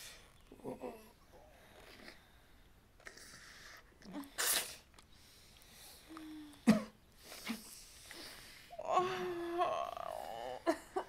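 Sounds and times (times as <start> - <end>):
man sobbing: 8.8 - 11.0.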